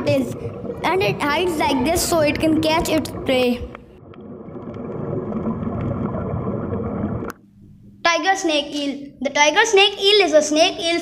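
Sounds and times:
underwater water rumble: 0:00.0 - 0:07.4.

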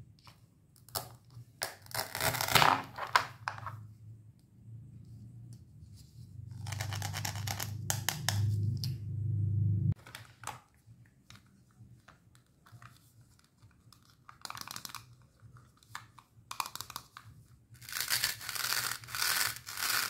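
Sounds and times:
velcro rasping: 0:01.7 - 0:02.8, 0:06.5 - 0:08.2, 0:17.8 - 0:20.0
low rumble: 0:06.2 - 0:10.0.

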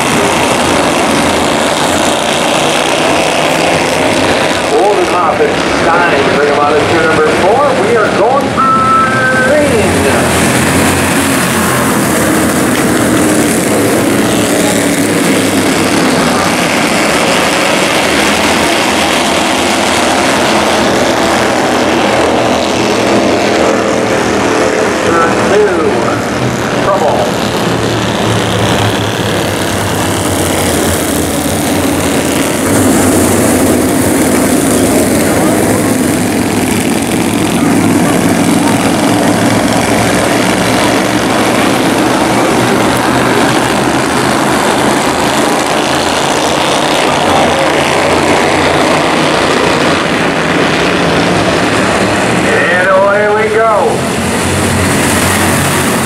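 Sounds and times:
race car engines droning: 0:00.0 - 0:56.0.

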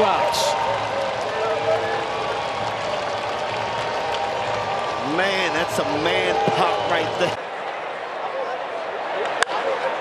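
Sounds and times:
crowd clapping: 0:00.0 - 0:07.4
crowd cheering: 0:00.0 - 0:10.0.

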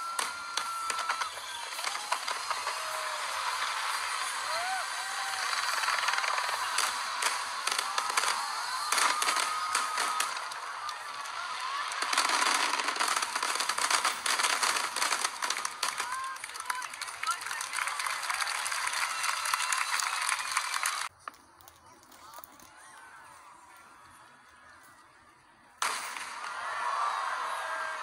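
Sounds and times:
firework whistles: 0:00.0 - 0:16.4
fireworks crackling: 0:00.0 - 0:23.2, 0:25.8 - 0:28.0
crowd cheering: 0:00.0 - 0:28.0.

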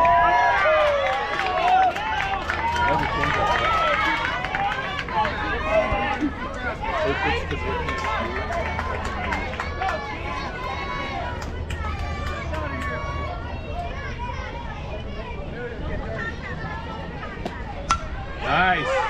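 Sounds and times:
players and spectators chattering: 0:00.0 - 0:19.0.

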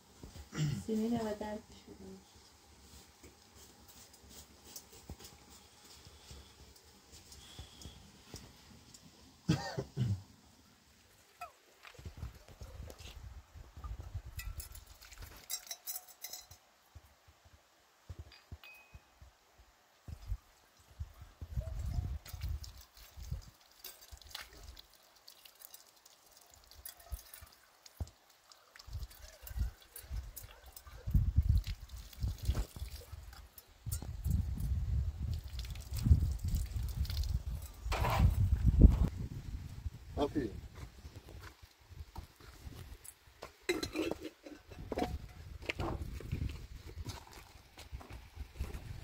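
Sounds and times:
light clinks: 0:14.4 - 0:16.7, 0:18.3 - 0:19.1
wind buffeting microphone: 0:21.0 - 0:23.5, 0:30.9 - 0:32.7, 0:33.8 - 0:41.0, 0:44.7 - 0:47.2
water trickling from a tap: 0:21.8 - 0:37.9.

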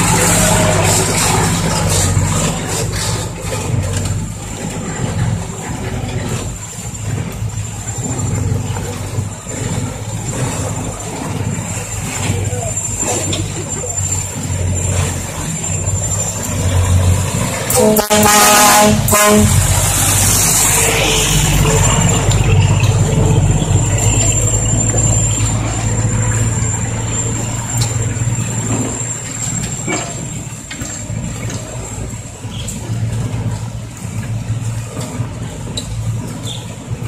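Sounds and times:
diesel truck engines droning: 0:00.0 - 0:37.0
truck horn: 0:17.6 - 0:22.1.

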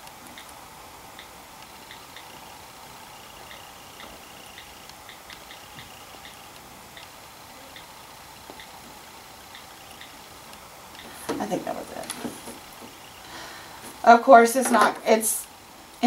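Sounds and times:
steady low hiss: 0:00.0 - 0:16.0.

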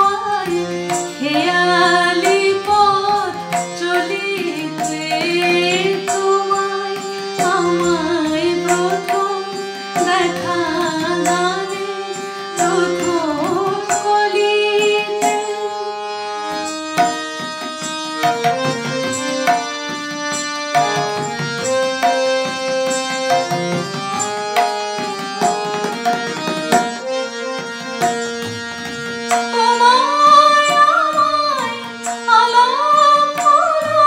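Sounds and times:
woman singing: 0:00.0 - 0:16.2, 0:29.4 - 0:34.0
harmonium playing: 0:00.0 - 0:34.0
percussion: 0:00.0 - 0:34.0.

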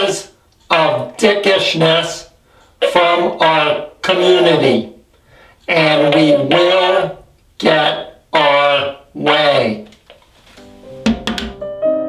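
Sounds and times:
piano chords: 0:10.6 - 0:12.0.

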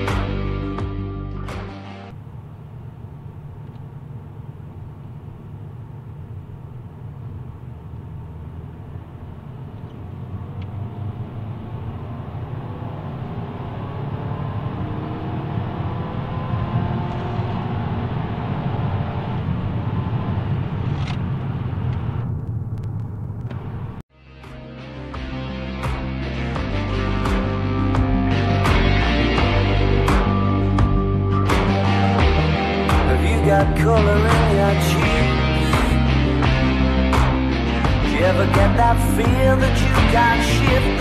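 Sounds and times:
car engine accelerating: 0:00.0 - 0:24.0, 0:25.4 - 0:41.0.

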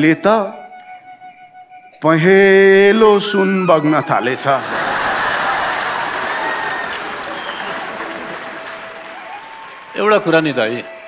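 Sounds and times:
audience applauding: 0:04.1 - 0:11.0.

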